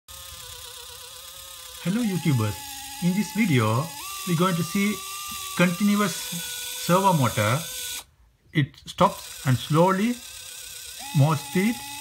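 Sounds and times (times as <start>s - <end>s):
servo motor buzzing whine: 0.1s - 8.1s, 9.1s - 12.0s.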